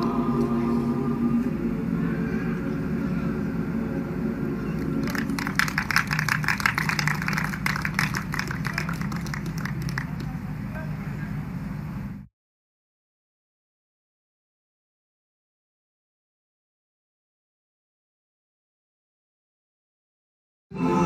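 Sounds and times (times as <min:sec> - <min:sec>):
hand clapping: 0:04.8 - 0:10.4.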